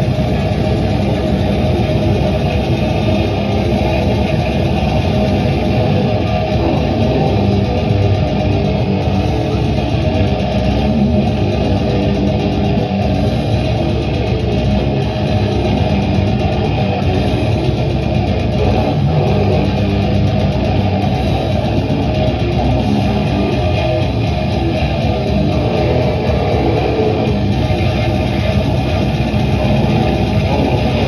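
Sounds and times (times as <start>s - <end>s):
distorted electric guitar: 0.0s - 31.0s
drums with fast cymbal strokes: 0.0s - 31.0s.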